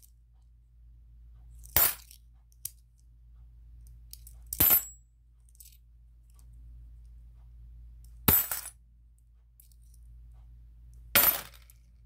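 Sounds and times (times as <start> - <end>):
coins clattering with metallic ring: 1.6 - 2.2, 4.1 - 5.8, 8.3 - 8.8, 11.2 - 11.9
coins clinking: 8.3 - 8.7, 11.2 - 11.7.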